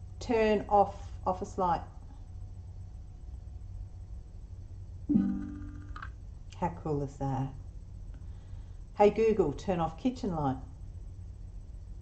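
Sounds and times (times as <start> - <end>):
low room hum: 0.0 - 12.0
smart speaker chime: 5.1 - 5.9.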